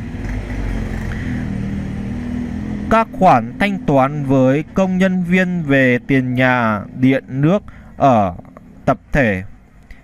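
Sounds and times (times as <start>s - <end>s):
low mechanical hum: 0.0s - 10.0s
person speaking: 2.9s - 9.6s.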